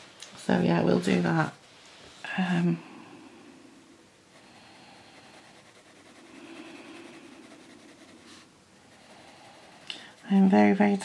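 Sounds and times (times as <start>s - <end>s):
soft low rumble: 1.1s - 11.0s
pencil scratching on paper: 4.3s - 11.0s.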